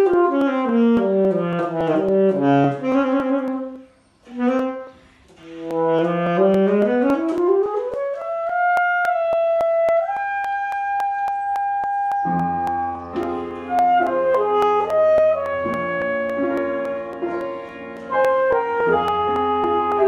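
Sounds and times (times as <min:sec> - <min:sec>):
alto saxophone solo: 0:00.0 - 0:12.9, 0:13.6 - 0:20.0
even ticking: 0:00.0 - 0:20.0.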